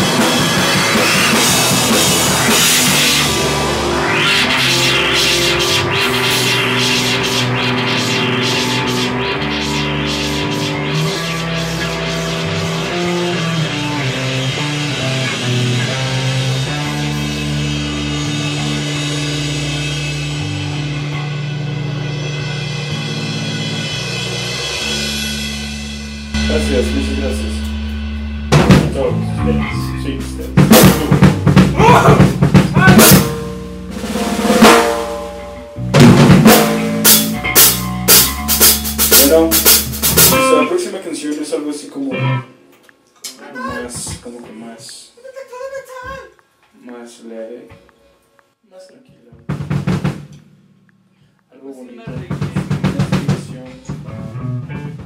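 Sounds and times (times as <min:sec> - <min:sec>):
drum and cymbal hits: 0:00.0 - 0:40.6, 0:49.5 - 0:50.8, 0:52.1 - 0:54.3
rock band playing live: 0:00.0 - 0:40.8, 0:52.3 - 0:55.0.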